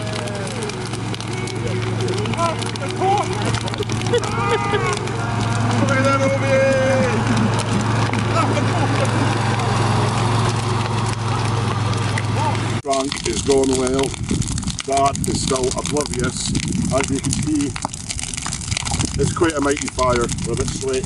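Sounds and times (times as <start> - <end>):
lawn mower engine droning: 0.0 - 20.1.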